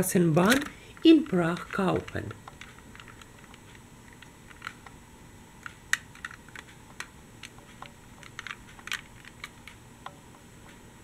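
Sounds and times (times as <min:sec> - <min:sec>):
toy clicking and clacking: 0:00.4 - 0:04.9, 0:05.6 - 0:09.8.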